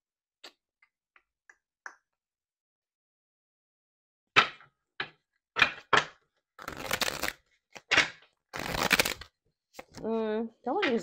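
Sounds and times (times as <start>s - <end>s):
cards being shuffled: 5.7s - 10.0s.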